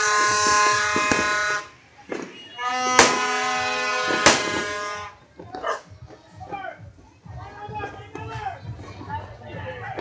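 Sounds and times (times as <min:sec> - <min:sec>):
horn blaring steady note: 0:00.0 - 0:01.8, 0:02.4 - 0:05.2
firecracker bang: 0:00.0 - 0:05.1
people and children calling out: 0:00.0 - 0:10.0.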